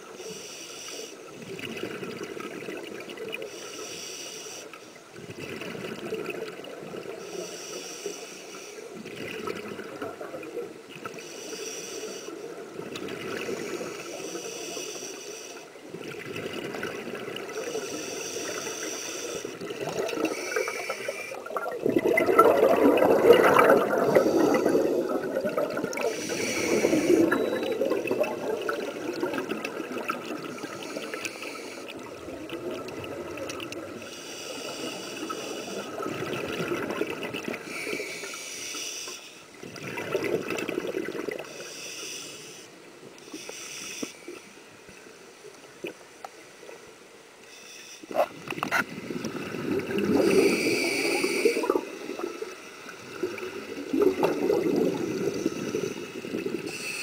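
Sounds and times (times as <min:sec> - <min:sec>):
regulator breathing hiss: 0:00.1 - 0:01.3, 0:03.4 - 0:05.0, 0:07.2 - 0:09.0, 0:11.1 - 0:12.6, 0:13.4 - 0:15.8, 0:17.5 - 0:19.6, 0:20.2 - 0:21.5, 0:24.0 - 0:25.1, 0:26.0 - 0:27.4, 0:30.5 - 0:32.0, 0:34.0 - 0:36.0, 0:37.6 - 0:39.6, 0:41.5 - 0:44.7, 0:47.4 - 0:48.2, 0:50.2 - 0:53.0, 0:55.0 - 0:57.0
gurgling exhaled bubbles: 0:15.9 - 0:17.8, 0:19.5 - 0:31.2, 0:35.2 - 0:37.7, 0:39.6 - 0:41.5, 0:48.1 - 0:56.7.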